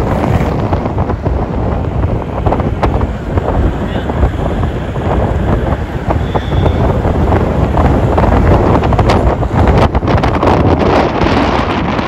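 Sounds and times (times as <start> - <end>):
steady low rumble: 0.0 - 12.0
wind buffeting microphone: 0.0 - 12.0.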